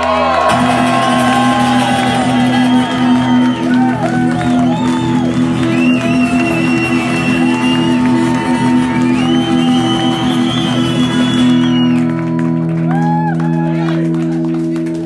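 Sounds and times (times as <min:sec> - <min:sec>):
crowd shouting and singing: 0:00.0 - 0:14.2
guitar holding a chord: 0:00.2 - 0:15.0.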